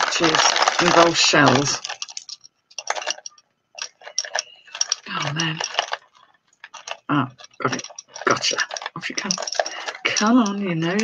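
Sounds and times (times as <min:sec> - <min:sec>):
beads and shells clinking: 0:00.0 - 0:11.0.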